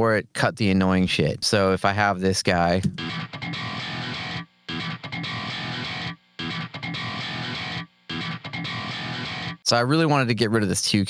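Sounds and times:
heavy electric guitar riff: 2.8 - 9.6.

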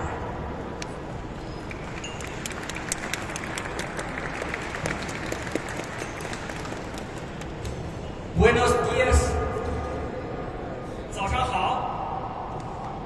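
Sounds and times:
audience applauding: 1.7 - 7.5.

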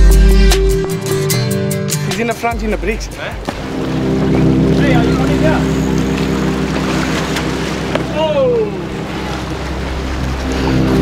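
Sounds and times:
low engine drone: 3.6 - 11.0.

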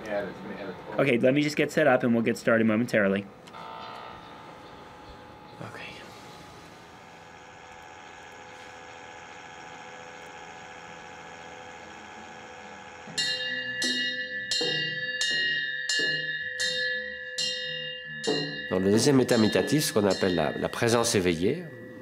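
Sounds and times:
steady electrical hum: 0.0 - 14.2
mri scanner ringing knocks: 13.0 - 17.2, 18.2 - 21.3.

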